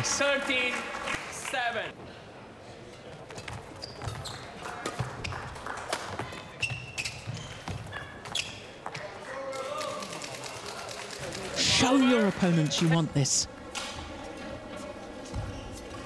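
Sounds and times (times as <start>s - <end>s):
shoes squeaking on court floor: 3.1s - 5.5s, 6.2s - 9.1s, 14.3s - 16.0s.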